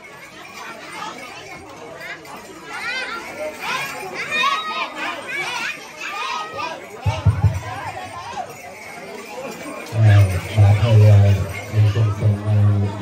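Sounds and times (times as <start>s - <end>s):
children calling out and chattering: 0.0s - 13.0s
crowd talking: 0.0s - 13.0s.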